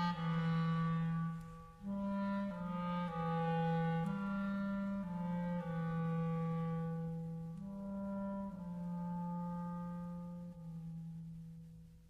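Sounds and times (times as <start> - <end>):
clarinet playing long low notes: 0.0 - 11.9.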